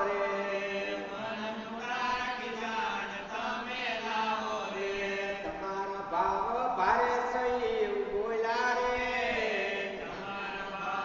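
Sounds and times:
devotional chanting: 0.0 - 11.0.

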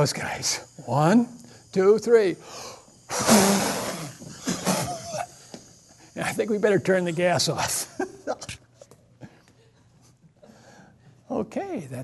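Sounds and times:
short breaths: 1.4 - 1.8, 2.4 - 6.2, 9.2 - 11.2
hard blow of breath: 2.5 - 5.4
men's brief vocal sounds: 3.1 - 5.4.

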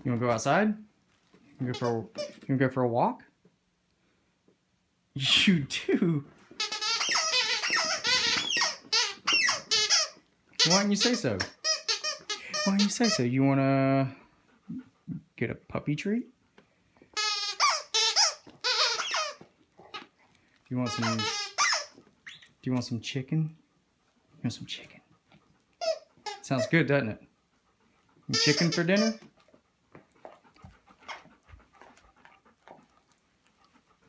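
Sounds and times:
squeaky dog toy squeaking: 1.6 - 2.4, 6.6 - 13.4, 17.2 - 20.1, 20.8 - 22.6, 25.8 - 26.9, 28.3 - 29.3
dog panting: 6.5 - 17.0, 17.8 - 34.0.

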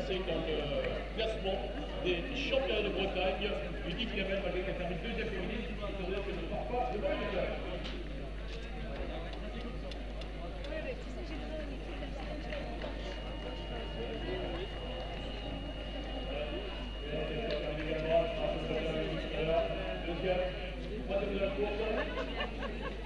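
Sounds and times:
indistinct chatter of people: 0.0 - 23.0
steady low hum: 0.0 - 23.0
faint high steady tone: 11.6 - 21.6.

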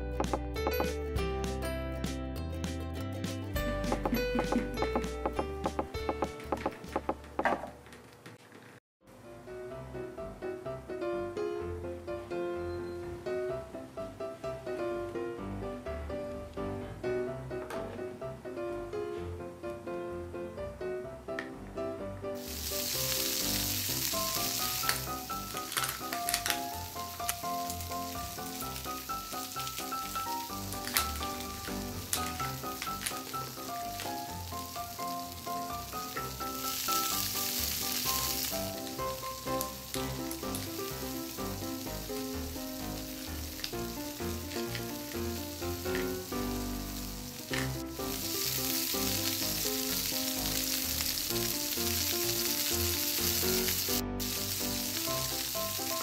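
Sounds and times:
light background music: 0.0 - 7.8, 9.1 - 56.0
food sizzling in a pan: 22.4 - 56.0
clicks of small plastic pieces: 25.6 - 26.7.

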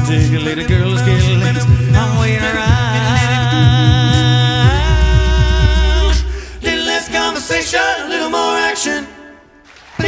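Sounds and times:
vocal percussion thumps: 0.0 - 8.0
male vocal quartet singing: 0.0 - 10.0.

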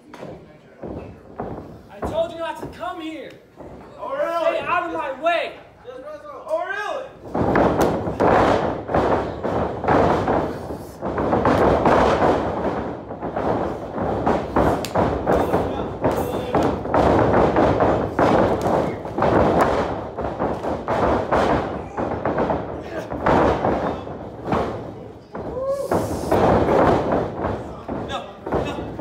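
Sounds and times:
bodies thudding on ring canvas: 7.2 - 29.0.

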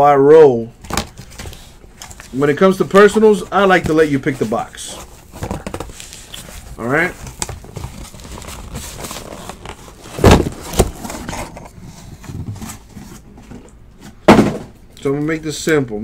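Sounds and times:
cardboard rustling: 0.8 - 14.7
boxes thudding on a table: 10.1 - 11.5, 14.1 - 14.8.

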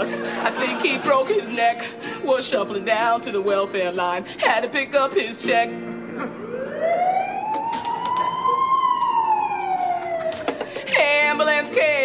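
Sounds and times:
ambulance siren wail: 6.1 - 10.9.

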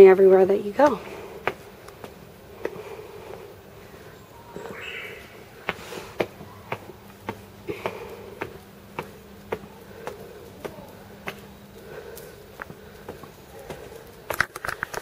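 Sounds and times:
footsteps on wet tiled steps: 0.0 - 15.0.

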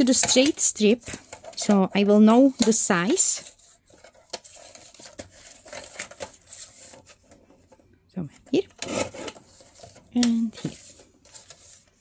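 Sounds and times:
paper rustling: 2.4 - 7.8, 8.8 - 12.0.

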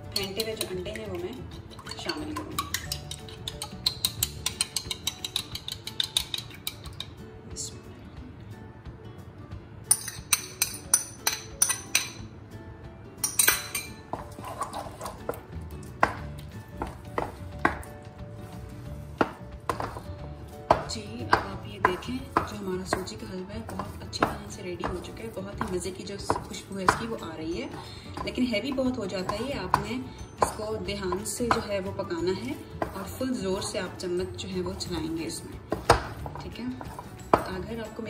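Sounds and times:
metal spoon clinking on bowl: 0.1 - 7.2, 9.9 - 12.2, 13.2 - 15.3
wooden spatula scraping wok: 14.2 - 15.4, 16.6 - 21.0, 21.8 - 37.8.

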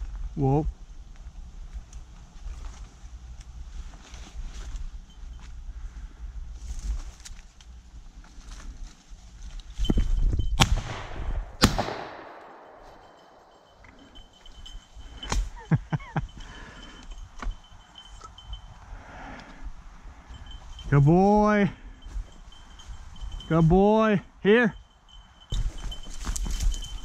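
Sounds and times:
rustle of brush and leaves: 0.0 - 20.9, 22.0 - 23.5, 25.0 - 27.0
shotgun shots echoing: 10.6 - 13.8.

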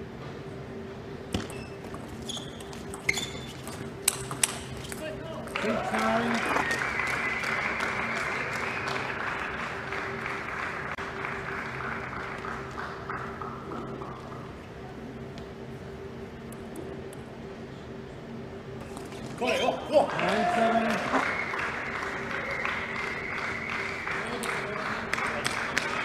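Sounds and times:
crowd cheering: 5.5 - 14.0, 19.4 - 26.0.

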